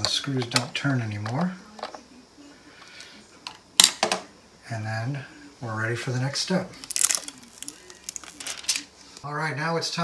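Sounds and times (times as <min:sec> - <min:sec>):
plastic film peeling crackle: 0:06.8 - 0:09.3.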